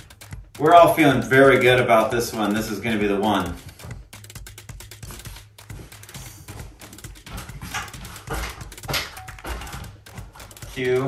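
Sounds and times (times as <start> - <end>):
small knocks and clicks: 3.6 - 11.0.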